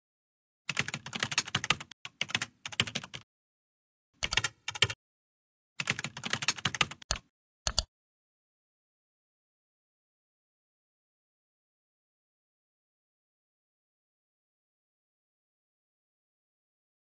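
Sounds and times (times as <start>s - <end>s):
computer keyboard typing: 0.7s - 3.2s, 4.2s - 5.0s, 5.8s - 7.9s.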